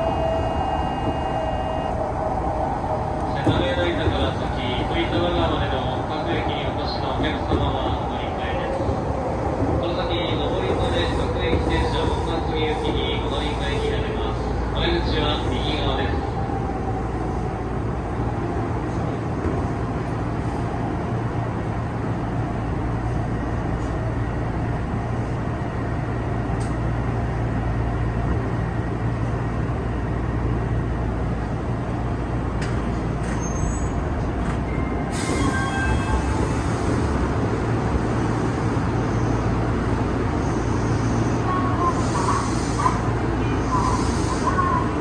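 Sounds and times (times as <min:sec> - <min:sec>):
train rumbling through tunnel: 0:00.0 - 0:45.0.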